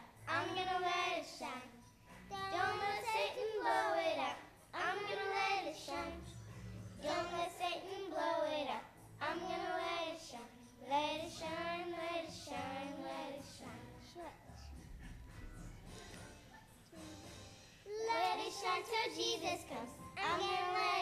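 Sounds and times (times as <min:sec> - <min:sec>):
girls singing into a microphone: 0:00.0 - 0:01.8, 0:02.4 - 0:06.3, 0:07.0 - 0:14.3, 0:17.9 - 0:21.0.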